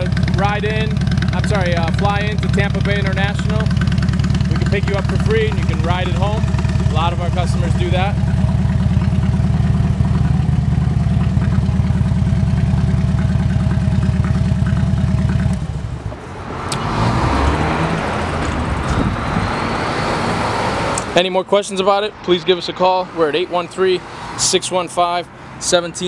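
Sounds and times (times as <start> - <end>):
motorcycle engine idling: 0.0 - 16.2.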